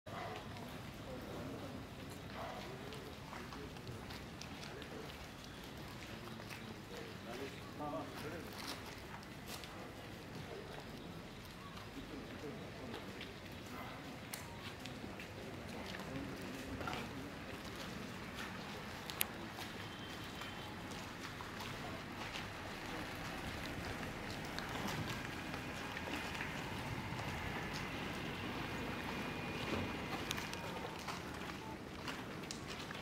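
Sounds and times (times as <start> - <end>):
faint distant voices: 0.1 - 33.0.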